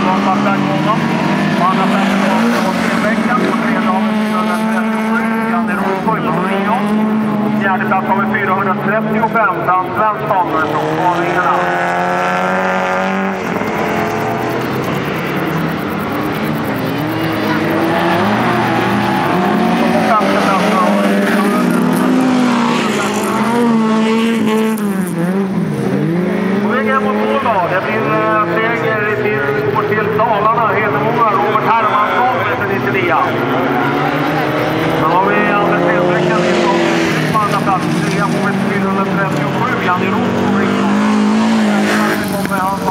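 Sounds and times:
race car engines revving: 0:00.0 - 0:42.9.

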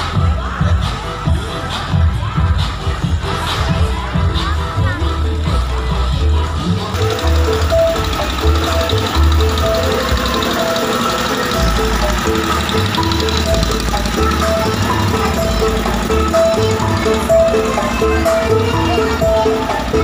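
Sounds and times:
loud music with pulsing bass: 0:00.0 - 0:20.0.

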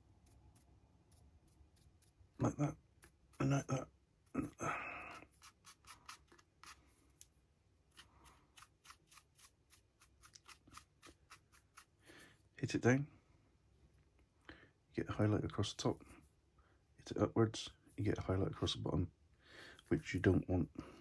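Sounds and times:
paintbrush scratching on plastic: 0:00.0 - 0:04.3, 0:05.2 - 0:07.2, 0:07.9 - 0:12.0.

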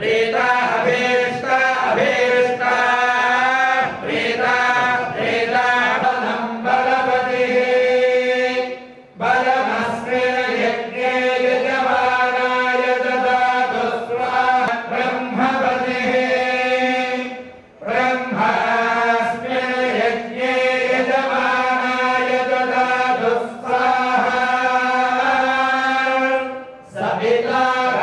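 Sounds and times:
group of voices chanting: 0:00.0 - 0:28.0.

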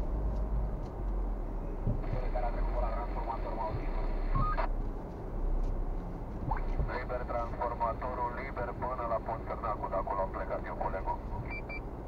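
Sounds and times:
car rumbling slowly: 0:00.0 - 0:12.0
muffled voices in a car: 0:01.5 - 0:04.7, 0:06.4 - 0:11.8.

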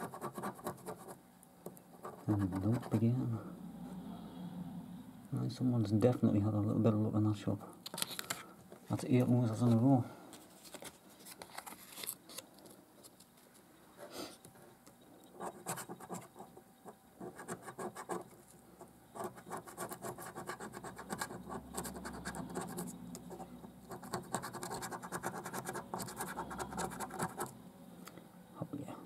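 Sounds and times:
coin scratching scratch card: 0:00.0 - 0:01.2, 0:02.0 - 0:03.0, 0:15.4 - 0:16.6, 0:17.2 - 0:18.4, 0:19.2 - 0:27.5.

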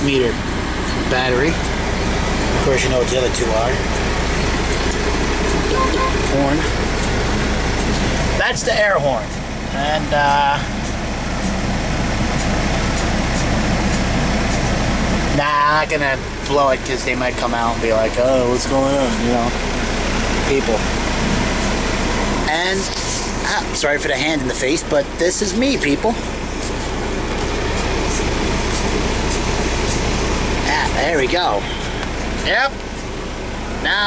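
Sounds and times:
diesel engine idling: 0:00.0 - 0:34.0.

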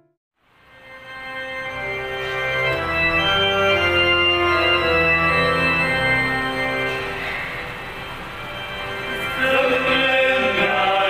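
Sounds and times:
organ hymn chords: 0:00.6 - 0:11.0.

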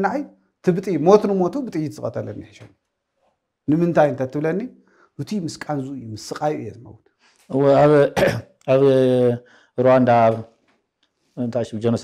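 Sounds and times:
man talking: 0:00.0 - 0:02.7, 0:03.7 - 0:10.6, 0:11.4 - 0:12.0.

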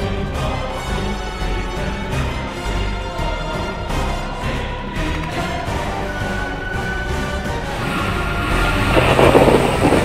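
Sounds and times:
background music: 0:00.0 - 0:10.0
noisy rush: 0:07.8 - 0:10.0.

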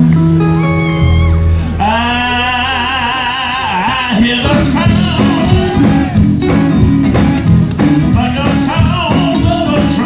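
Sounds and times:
gospel band music: 0:00.0 - 0:10.0
singer holding long note: 0:00.7 - 0:06.2.

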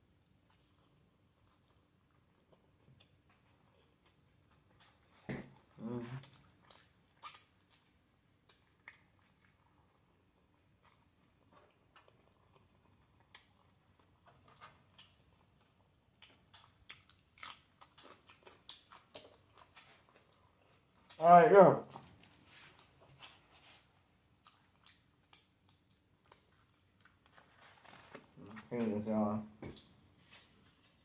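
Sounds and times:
person chewing: 0:00.2 - 0:21.2, 0:22.6 - 0:28.6.

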